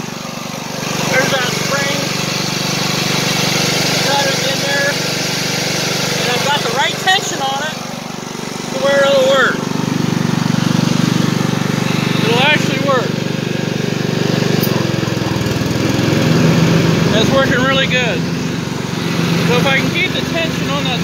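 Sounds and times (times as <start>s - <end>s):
riding mower engine running: 0.0s - 21.0s.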